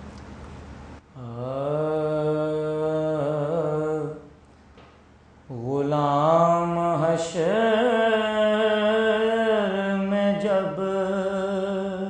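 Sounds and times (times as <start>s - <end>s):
man reciting: 1.2s - 4.3s, 5.5s - 12.0s.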